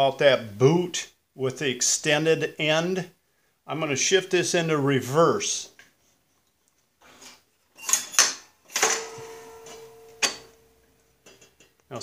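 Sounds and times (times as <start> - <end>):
metallic clicks and clanks: 7.8 - 11.9.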